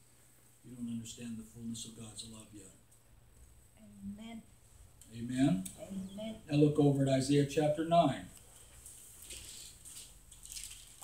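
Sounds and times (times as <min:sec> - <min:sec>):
thin pages rustling: 0:08.4 - 0:11.0.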